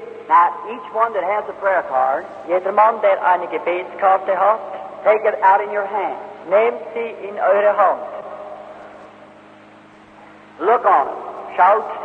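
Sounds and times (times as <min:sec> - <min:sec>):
low hum: 0:00.0 - 0:12.0
tape hiss: 0:00.0 - 0:12.0
voice echoing in a hall: 0:00.0 - 0:12.0.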